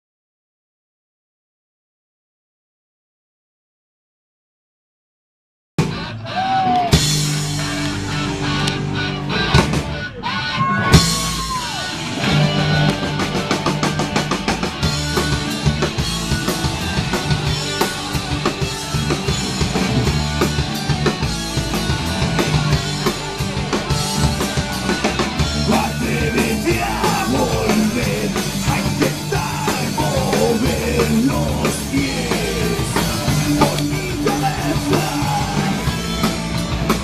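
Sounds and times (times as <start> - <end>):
held guitar chords: 5.8 - 37.0
live rock band playing: 5.8 - 37.0.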